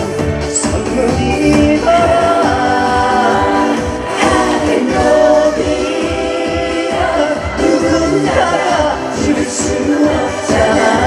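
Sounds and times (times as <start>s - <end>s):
pop song through stage speakers: 0.0s - 11.0s.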